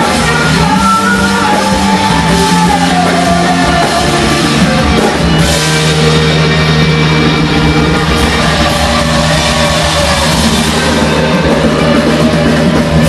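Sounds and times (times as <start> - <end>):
bass guitar: 0.0 - 13.0
distorted electric guitars: 0.0 - 13.0
drum kit: 0.0 - 13.0.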